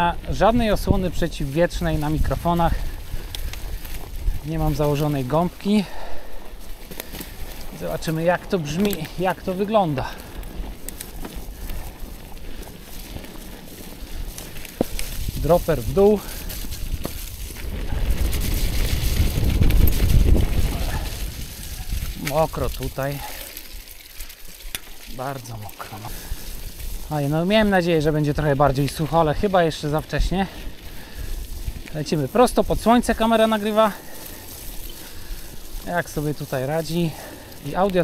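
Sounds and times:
wind buffeting microphone: 0:00.0 - 0:24.0, 0:24.8 - 0:38.0
bicycle tyres rolling through mud: 0:00.0 - 0:38.0.

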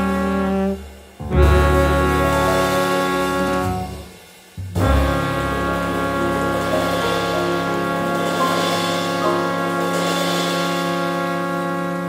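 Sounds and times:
jazz ballad: 0:00.0 - 0:12.0
low bass note: 0:01.2 - 0:03.9
horns holding a chord: 0:01.2 - 0:04.1, 0:04.8 - 0:12.0.

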